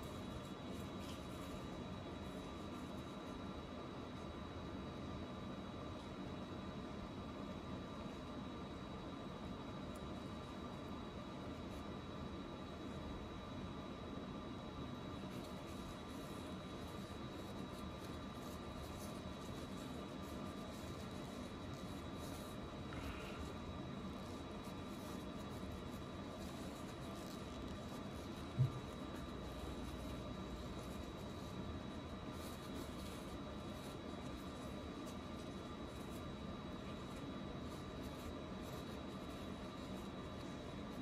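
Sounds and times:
tissue rustling and rubbing: 0:00.0 - 0:04.5, 0:14.2 - 0:41.0
steady background hiss: 0:00.0 - 0:41.0.

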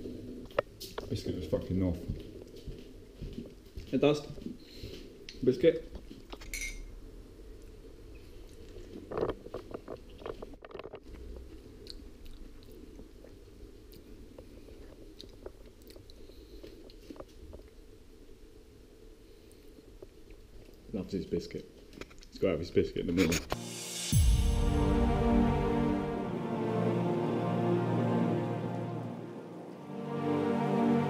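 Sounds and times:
parrot crunching a biscuit: 0:08.4 - 0:17.7.

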